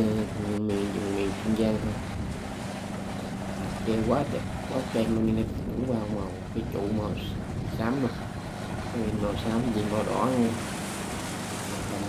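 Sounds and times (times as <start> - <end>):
boat engine drone: 0.0 - 12.0
waves washing: 0.0 - 12.0
wind buffeting microphone: 0.0 - 12.0.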